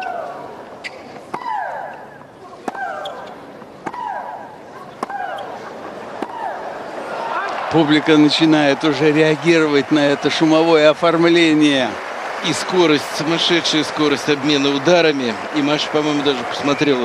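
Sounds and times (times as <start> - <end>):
crowd noise: 0.0 - 17.0
racket striking tennis ball: 0.7 - 5.5.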